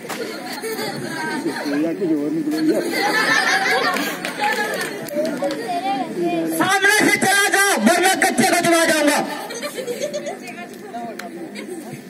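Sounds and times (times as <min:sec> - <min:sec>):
stage dialogue: 0:01.2 - 0:11.4
low chatter of voices: 0:09.4 - 0:12.0.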